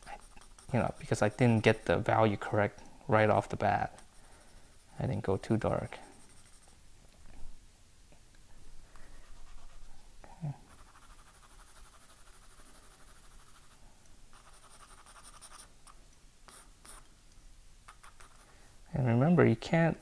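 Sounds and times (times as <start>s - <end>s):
pencil scratching on paper: 0.0s - 2.1s, 5.6s - 6.8s, 9.3s - 9.9s, 10.6s - 15.7s, 16.5s - 17.0s, 17.9s - 18.5s.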